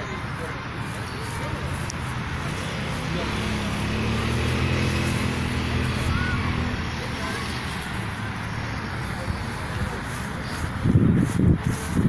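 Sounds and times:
engine humming: 0:00.0 - 0:12.0
outdoor background noise: 0:00.0 - 0:12.0.

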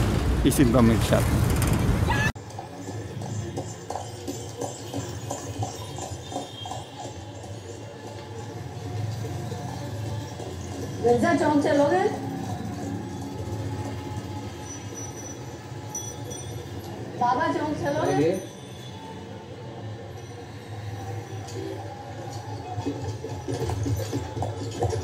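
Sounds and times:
horse hooves clip-clopping: 0:02.4 - 0:11.0, 0:22.3 - 0:25.0.

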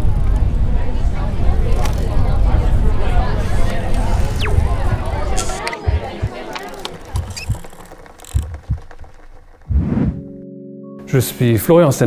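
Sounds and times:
rising swoosh: 0:04.1 - 0:06.3
low thumps: 0:04.1 - 0:10.2
music: 0:06.9 - 0:12.0.

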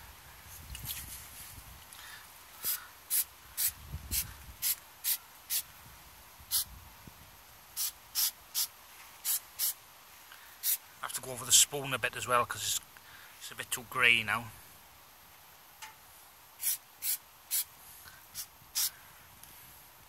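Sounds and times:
spray paint can hissing: 0:02.6 - 0:05.6, 0:06.5 - 0:06.7, 0:07.8 - 0:09.8, 0:10.6 - 0:10.8, 0:16.6 - 0:17.7, 0:18.3 - 0:18.9.

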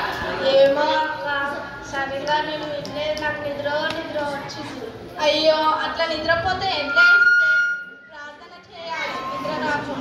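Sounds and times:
children talking: 0:00.0 - 0:10.0.

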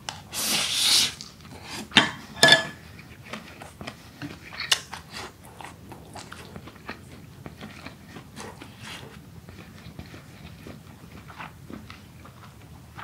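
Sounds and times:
chewing and crunching food: 0:01.1 - 0:13.0.

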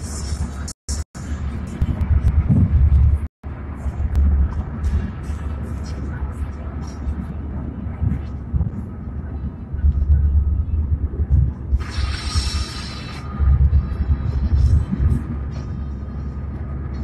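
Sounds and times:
car road and engine rumble: 0:00.0 - 0:17.0.

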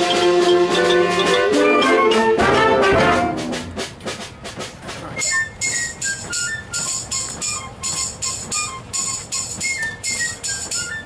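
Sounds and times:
percussion scraping train chug: 0:00.0 - 0:11.0
high whistle-like tones: 0:05.2 - 0:11.0.

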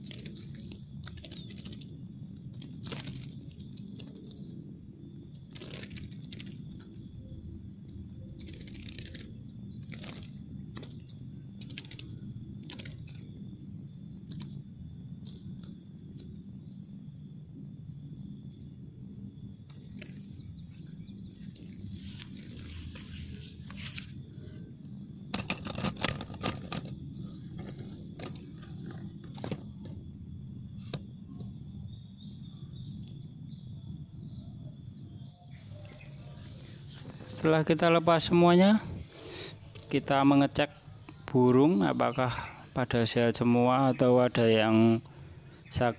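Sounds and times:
small clicks and rustles: 0:00.0 - 0:04.5, 0:05.4 - 0:07.0, 0:08.4 - 0:13.3
crackling rustles: 0:00.0 - 0:07.1, 0:07.8 - 0:13.4, 0:19.6 - 0:24.7, 0:35.6 - 0:37.9
high insect drone: 0:00.0 - 0:45.9.

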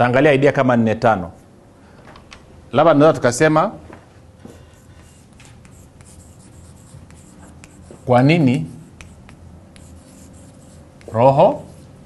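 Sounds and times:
chalk tapping: 0:04.5 - 0:12.0
chalk scratching on blackboard: 0:04.6 - 0:12.0.

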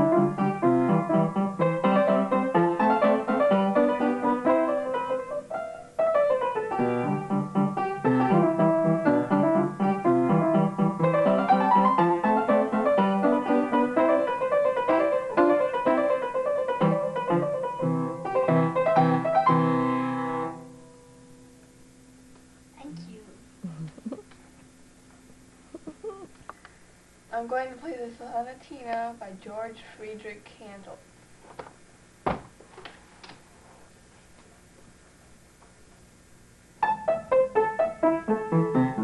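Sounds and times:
upright piano playing: 0:00.0 - 0:21.6, 0:36.8 - 0:39.0.

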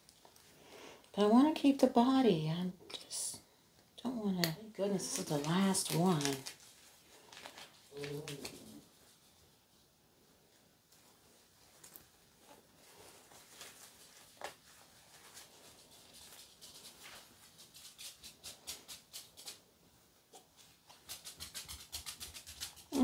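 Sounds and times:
soft handling rustles: 0:04.9 - 0:17.6.

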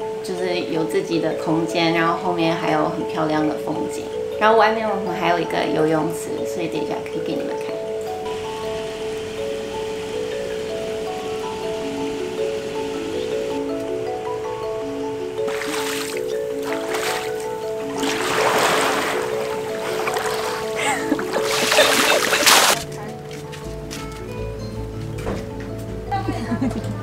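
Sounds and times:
background music melody: 0:00.0 - 0:27.0
water splashing: 0:15.5 - 0:22.9.

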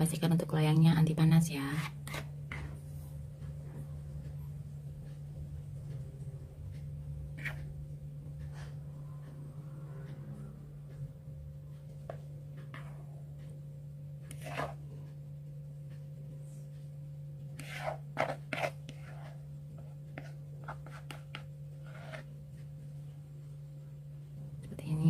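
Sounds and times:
steady low hum: 0:00.0 - 0:25.0
spatula scraping a bowl: 0:01.6 - 0:03.2, 0:06.8 - 0:09.4, 0:12.0 - 0:13.1, 0:14.2 - 0:15.1, 0:17.5 - 0:22.9.

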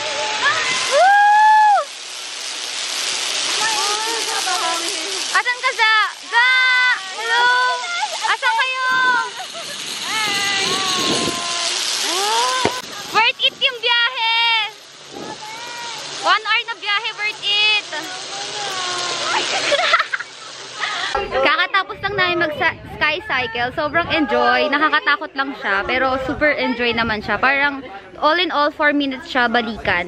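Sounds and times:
rushing hiss: 0:00.0 - 0:22.4
woman squealing and exclaiming: 0:00.4 - 0:01.9, 0:06.2 - 0:12.8.

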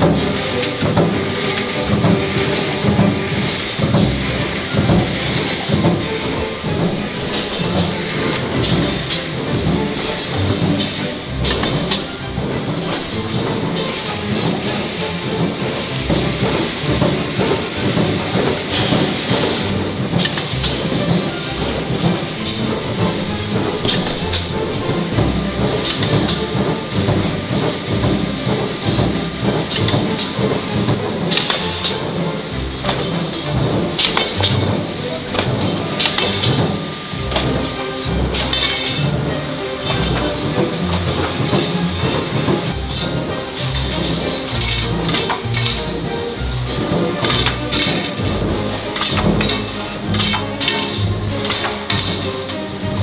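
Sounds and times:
background music: 0:00.0 - 0:53.0
roll-forming machine running: 0:00.0 - 0:53.0.

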